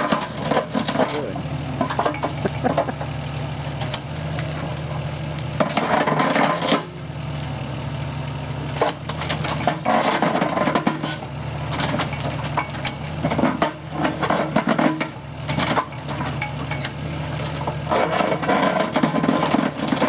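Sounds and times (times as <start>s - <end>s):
concrete rubble crunching in crusher: 0.0s - 20.0s
excavator engine running: 0.0s - 20.0s.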